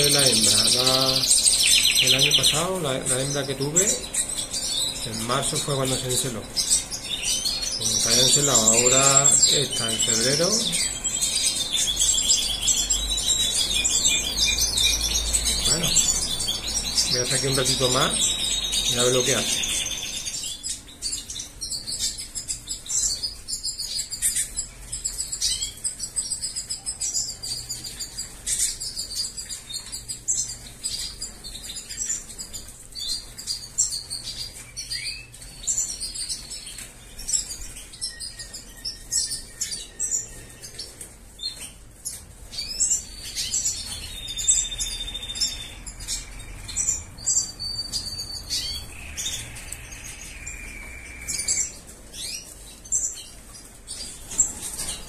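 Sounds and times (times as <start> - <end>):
goldfinches twittering: 0.0 - 55.0
whistled bird notes: 42.6 - 52.4.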